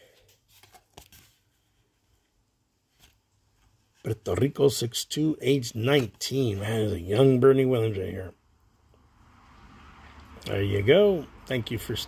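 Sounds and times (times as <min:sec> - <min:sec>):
cardboard card ticks and rustles: 0:00.2 - 0:02.3.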